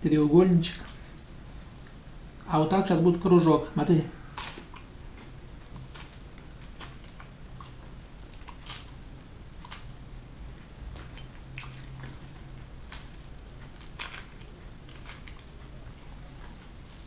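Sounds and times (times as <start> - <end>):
pastry crackling: 0.1 - 17.0
chewing flaky pastry: 4.0 - 17.0.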